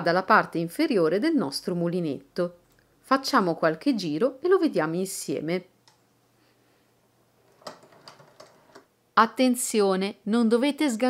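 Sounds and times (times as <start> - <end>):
knitting mill clicking: 7.4 - 8.9.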